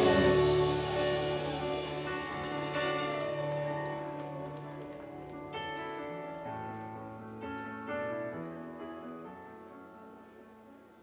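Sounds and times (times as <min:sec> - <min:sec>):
electric guitar chords: 0:00.0 - 0:04.6
keyboard chords: 0:00.0 - 0:11.0.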